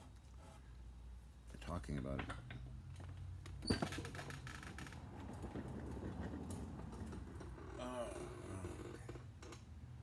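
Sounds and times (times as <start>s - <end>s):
office chair clicks and creaks: 2.3s - 9.7s.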